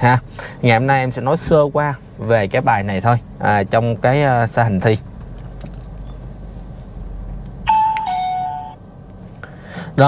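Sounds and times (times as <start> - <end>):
car cabin rumble: 0.0 - 9.3
electronic two-note chime: 7.7 - 8.8.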